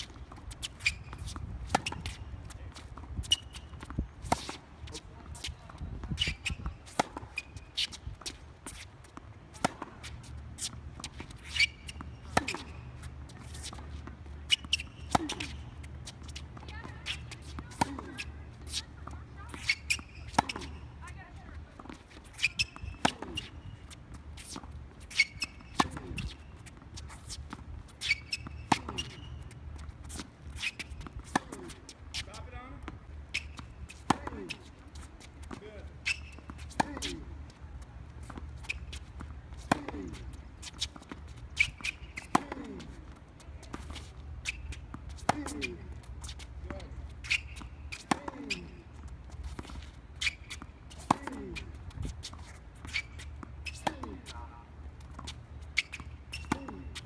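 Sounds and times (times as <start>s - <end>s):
tennis balls bouncing on court: 0.0s - 57.0s
tennis balls struck by rackets: 0.1s - 5.5s, 6.2s - 37.4s, 38.1s - 49.8s, 50.5s - 54.5s, 55.1s - 57.0s.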